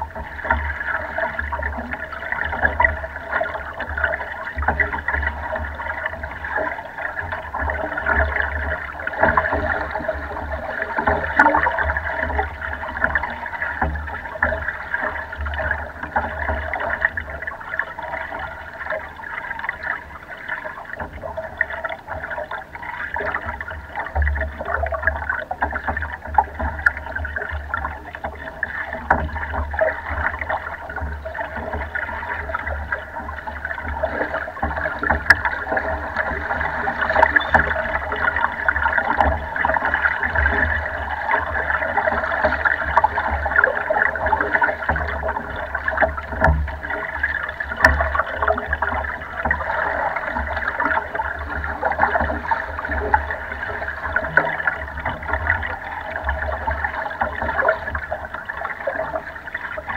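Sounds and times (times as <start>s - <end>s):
water lapping against boat hull: 0.0s - 59.9s.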